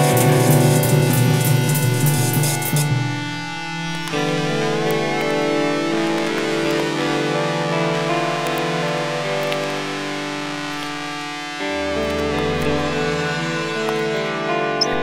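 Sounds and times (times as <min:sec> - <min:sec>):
guitar-led instrumental music: 0:00.0 - 0:15.0.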